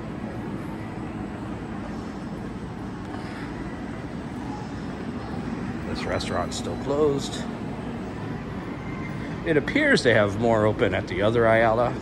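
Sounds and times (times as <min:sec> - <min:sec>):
indoor mall background noise: 0:00.0 - 0:12.0.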